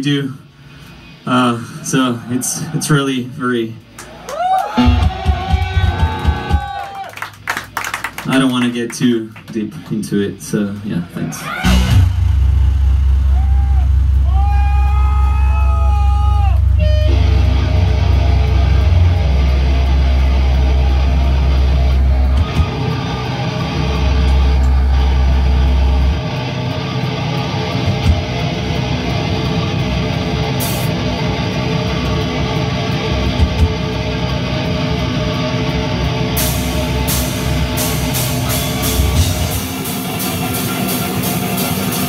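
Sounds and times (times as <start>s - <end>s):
distorted guitars: 4.8s - 6.8s, 11.4s - 42.0s
low bass drone: 11.7s - 42.0s.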